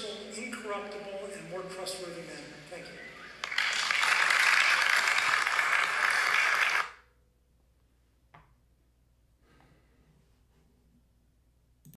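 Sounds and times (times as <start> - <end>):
audience applause: 3.4 - 7.0.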